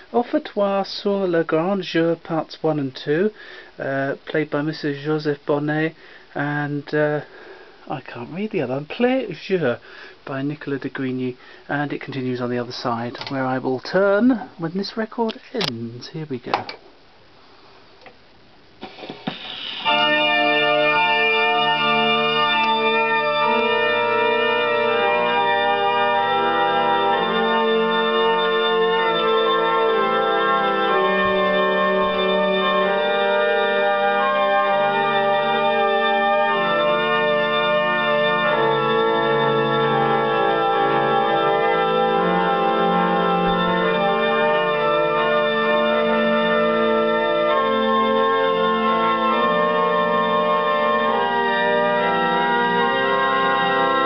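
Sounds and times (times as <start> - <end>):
pipe organ chords on old record: 0.0 - 54.0.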